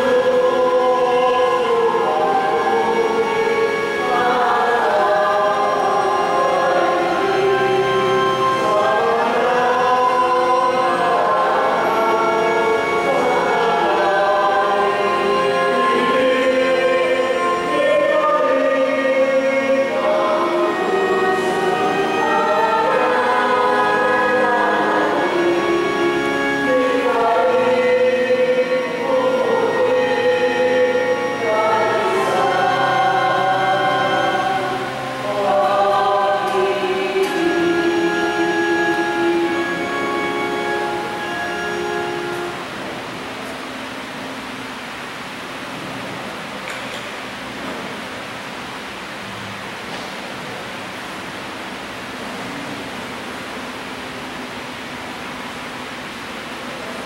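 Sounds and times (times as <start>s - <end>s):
group singing a slow hymn: 0.0s - 42.8s
steady room noise hiss: 0.0s - 57.0s.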